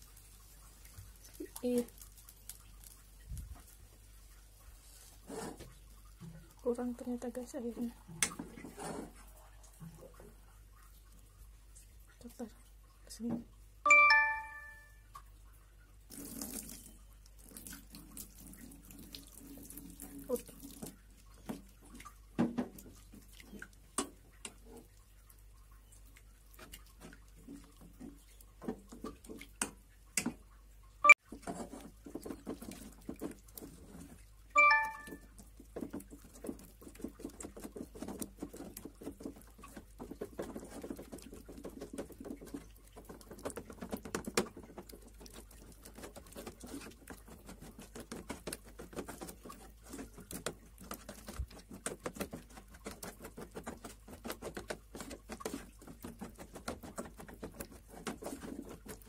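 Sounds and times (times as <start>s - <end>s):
bright ringing chime: 13.9s - 15.0s, 34.6s - 35.2s.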